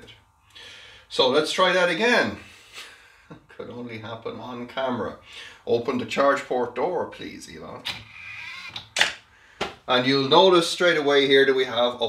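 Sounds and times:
actuator whine: 0:04.0 - 0:09.3.

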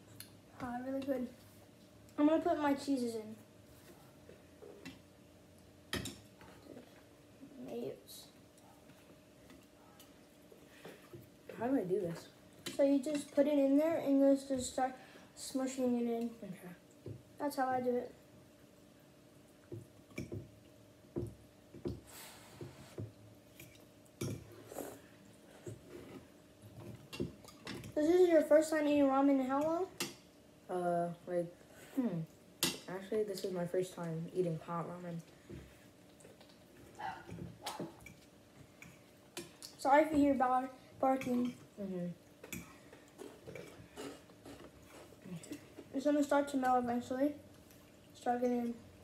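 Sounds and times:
faint eating sounds: 0:00.0 - 0:49.0.

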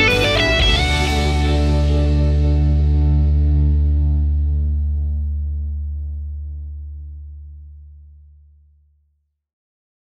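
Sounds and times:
electric guitar chord ringing: 0:00.0 - 0:06.2.

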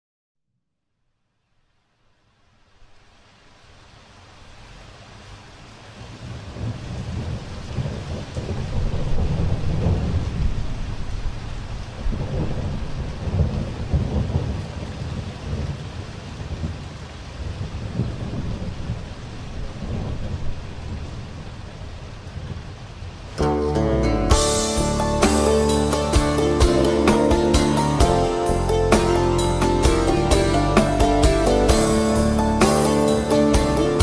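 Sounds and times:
steady rain: 0:01.1 - 0:34.0
rolling thunder: 0:06.0 - 0:22.8.

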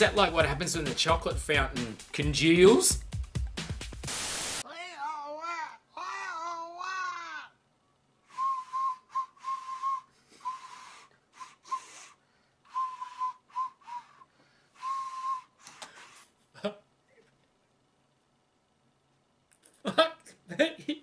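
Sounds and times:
short breathy whistle toots: 0:08.3 - 0:16.2.

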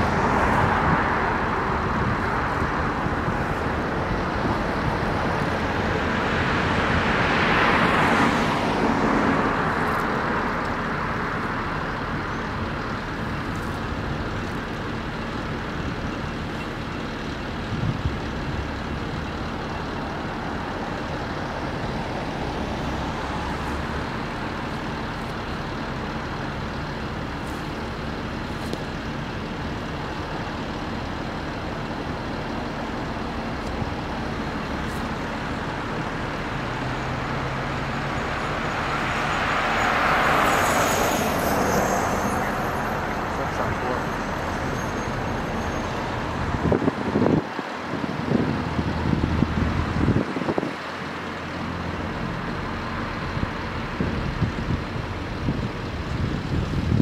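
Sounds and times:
road traffic hum: 0:00.0 - 0:57.0.

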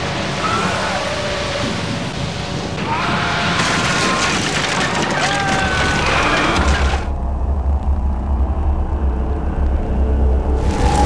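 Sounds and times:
music: 0:06.0 - 0:11.0
deep low rumble: 0:06.6 - 0:11.0.

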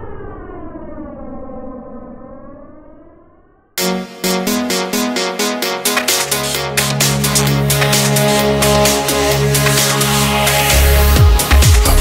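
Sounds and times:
siren-like wail: 0:00.0 - 0:03.8
electronic dance music: 0:03.8 - 0:12.0.

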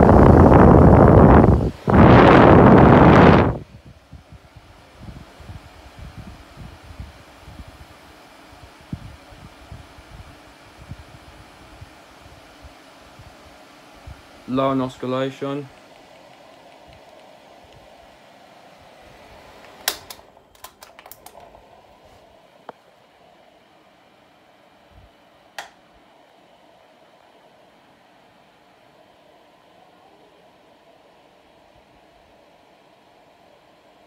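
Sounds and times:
fan airflow hum: 0:00.0 - 0:34.0.

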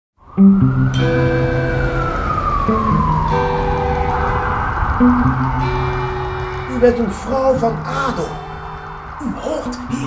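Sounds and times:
siren wail: 0:00.2 - 0:10.0
music with held low notes: 0:00.4 - 0:10.0.

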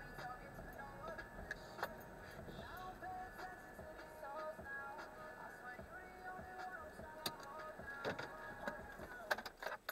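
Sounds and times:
faint music: 0:00.0 - 0:09.9.

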